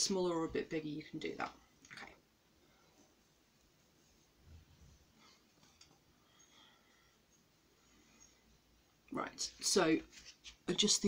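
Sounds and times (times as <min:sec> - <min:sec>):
faint rustling of wig: 0:00.0 - 0:11.0.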